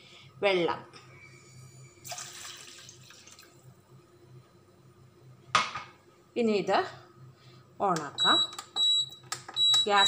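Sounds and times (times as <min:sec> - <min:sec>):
milk pouring into a saucepan: 0:02.0 - 0:03.6.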